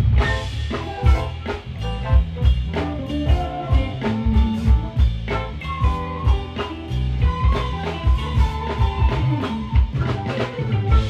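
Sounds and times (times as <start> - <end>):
drum kit beat: 0.0 - 11.0
live jazz band playing: 0.0 - 11.0.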